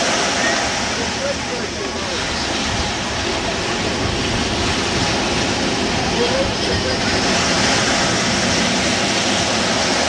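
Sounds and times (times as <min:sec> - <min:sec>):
surf rushing: 0:00.0 - 0:10.0
wind: 0:00.0 - 0:10.0.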